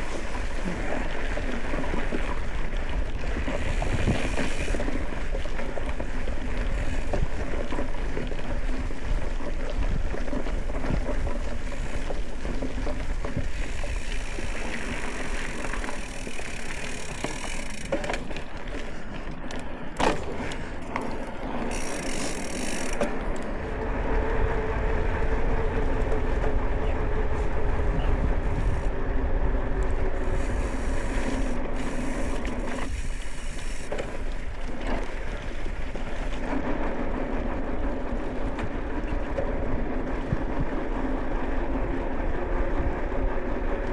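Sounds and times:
bike tyres rolling hum: 0.0 - 43.9
wind rumbling on microphone: 0.0 - 43.9.

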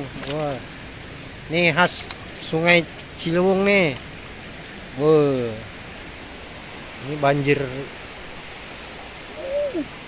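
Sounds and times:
river rushing: 0.0 - 10.0.

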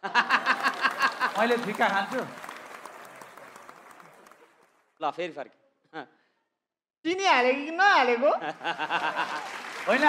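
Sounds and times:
audience applause: 0.0 - 5.0, 8.5 - 10.0.

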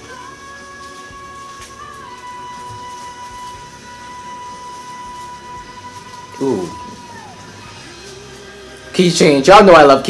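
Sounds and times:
woman singing a long high note: 0.0 - 8.4.

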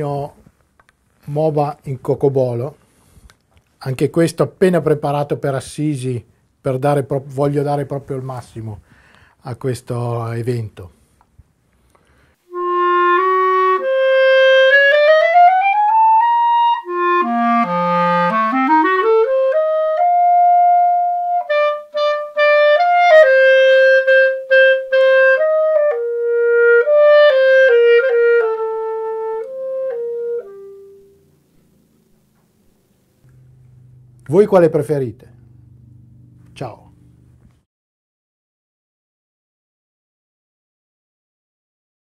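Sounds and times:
solo clarinet playing: 12.4 - 31.3.

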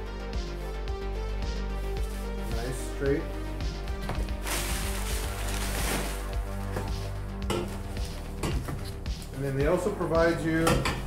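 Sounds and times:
background music: 0.0 - 11.0
paper wrapping rustling: 4.1 - 6.8.

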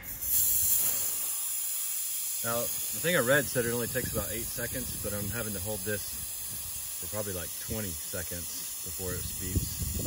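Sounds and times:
air hissing from tire valve: 0.0 - 10.0.

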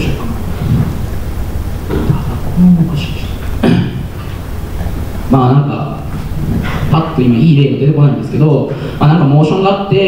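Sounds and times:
steady low rumble: 0.0 - 10.0
man speaking into a microphone: 5.3 - 6.2, 6.8 - 10.0.

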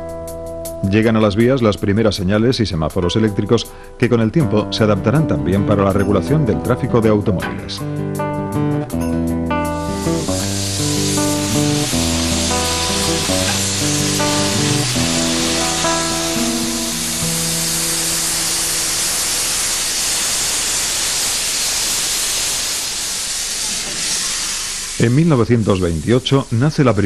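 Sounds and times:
background music: 0.0 - 19.8
steam locomotive hissing steam: 9.8 - 27.0.

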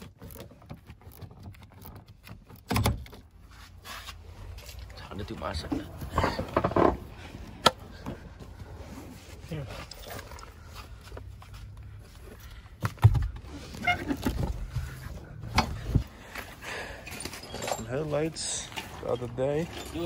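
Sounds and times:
sharp knocks and thumps: 12.8 - 13.5.

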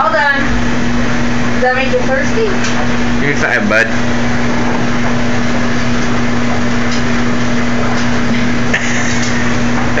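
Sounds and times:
washing machine running: 0.0 - 10.0.

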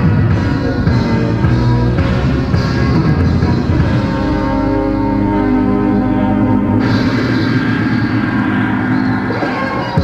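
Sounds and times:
live progressive rock music: 0.0 - 10.0
noisy sustained keyboard: 0.0 - 10.0.

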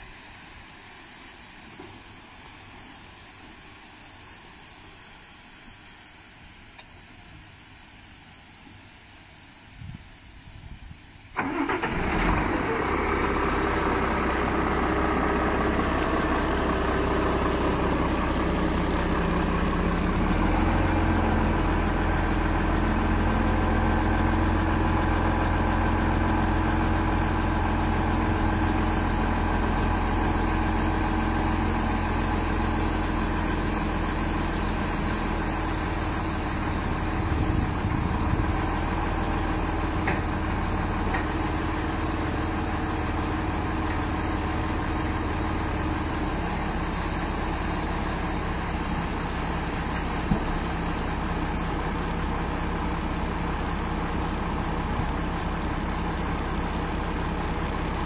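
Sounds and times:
tractor diesel engine running: 11.4 - 58.0.

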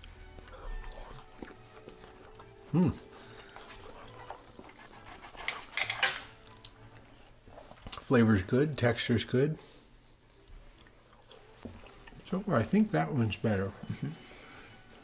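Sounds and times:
person humming mmm: 2.5 - 3.2
cutlery scraping a plate: 3.6 - 6.4.

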